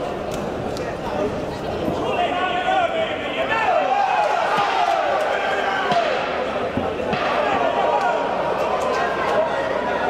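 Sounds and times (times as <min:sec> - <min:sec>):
arena noise: 0:00.0 - 0:10.0
voices: 0:00.0 - 0:10.0.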